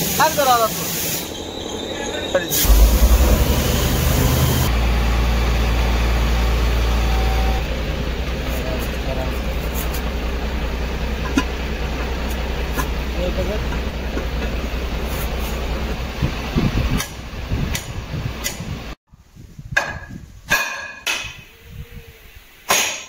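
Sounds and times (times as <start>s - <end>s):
loud low machine rumble: 1.4s - 19.0s.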